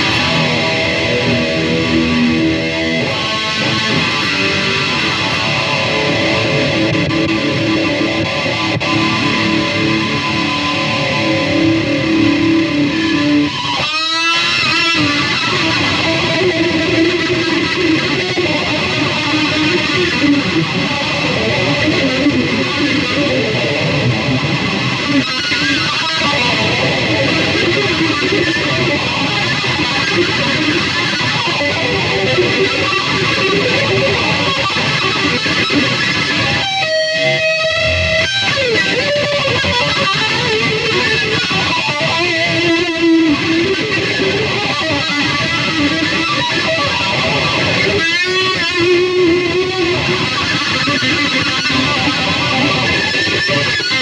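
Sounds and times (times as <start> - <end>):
distorted electric guitar riffs: 0.0 - 54.0
guitar sliding pitch sweep: 0.0 - 54.0.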